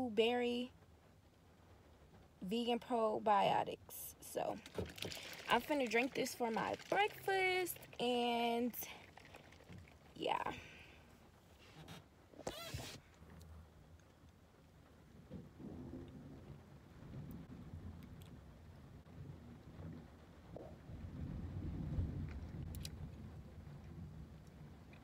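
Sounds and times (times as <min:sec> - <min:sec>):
sharp plastic crackle: 0:04.5 - 0:08.0
person gulping and swallowing: 0:04.6 - 0:08.0.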